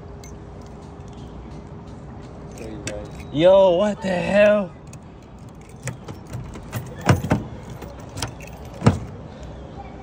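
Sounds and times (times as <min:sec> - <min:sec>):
car door handle and latch clicks: 0:04.4 - 0:09.2.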